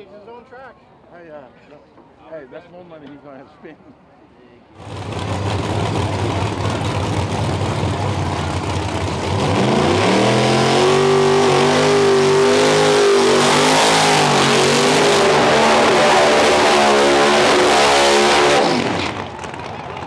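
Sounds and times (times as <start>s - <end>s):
car engine revving: 4.8s - 19.3s
tires spinning in burnout: 4.8s - 19.7s.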